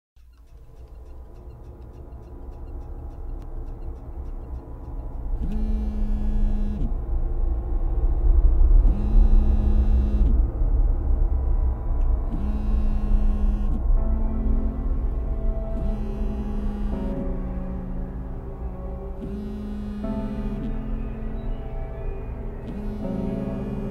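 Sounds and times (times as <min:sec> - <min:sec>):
low rumbling drone: 0:00.3 - 0:23.9
mobile phone vibrating: 0:05.3 - 0:07.0, 0:08.8 - 0:10.4, 0:12.3 - 0:13.9, 0:15.7 - 0:17.7, 0:19.1 - 0:20.8, 0:22.7 - 0:23.9.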